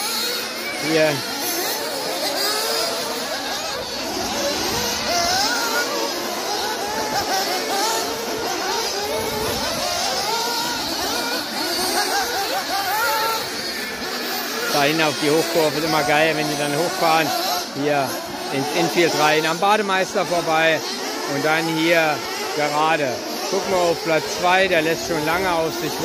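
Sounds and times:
model car engines whining: 0.0 - 26.0.

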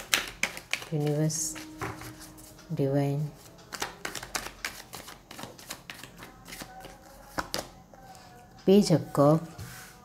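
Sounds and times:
cards being shuffled: 0.0 - 2.3, 3.7 - 7.7.

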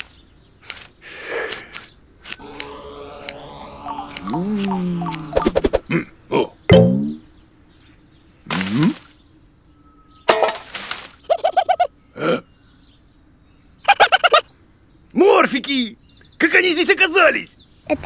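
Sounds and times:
cartoon character grunting and mumbling: 2.4 - 6.6.

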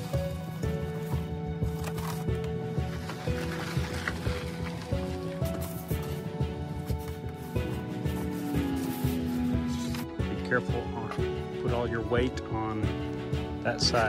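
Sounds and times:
background music with steady beat: 0.0 - 14.0.

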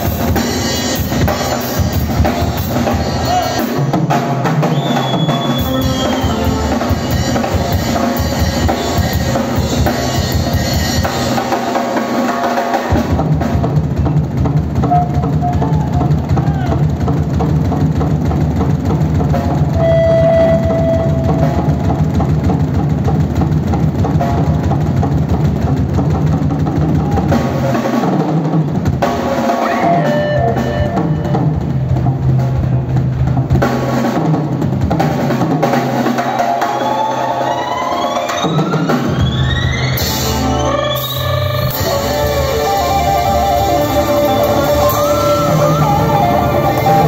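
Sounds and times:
live band music: 0.0 - 26.0, 26.8 - 47.0
drum kit and frame drum rhythm: 0.0 - 47.0
held high tone: 5.2 - 7.8, 19.8 - 21.9, 39.1 - 47.0.

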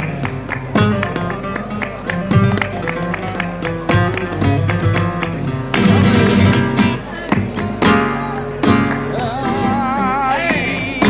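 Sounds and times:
flamenco guitar strumming: 0.0 - 11.0.

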